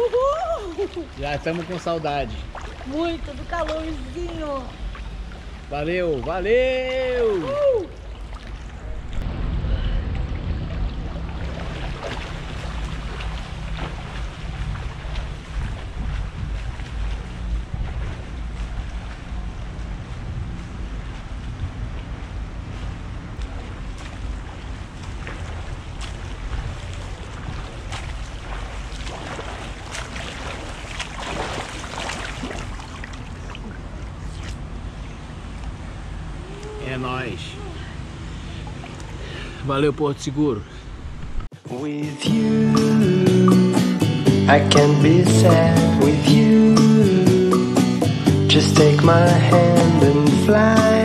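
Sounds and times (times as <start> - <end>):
pool water splashing: 0.0 - 51.0
wind rumble on microphone: 6.9 - 36.8.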